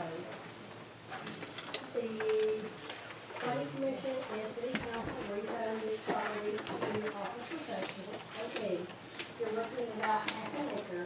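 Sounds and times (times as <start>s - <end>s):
paper rustling: 2.2s - 11.0s.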